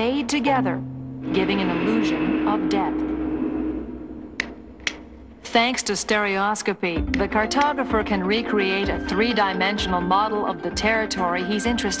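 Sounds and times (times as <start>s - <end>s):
steady low tone: 0.0s - 6.3s
faint hum: 0.0s - 8.0s.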